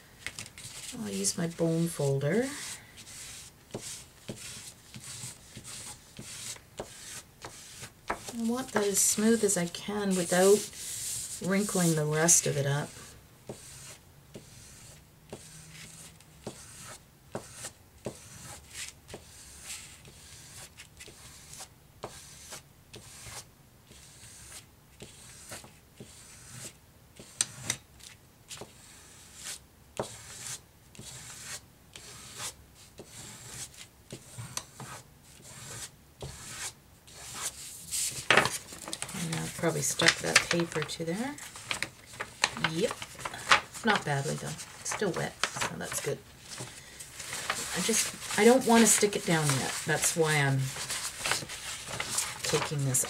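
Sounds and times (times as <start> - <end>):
bone folder scraping on paper: 0.3 - 27.8, 28.5 - 53.0.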